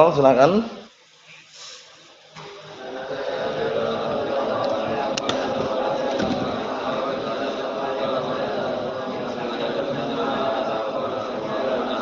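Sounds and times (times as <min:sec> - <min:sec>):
group of students reciting: 0:02.0 - 0:12.0.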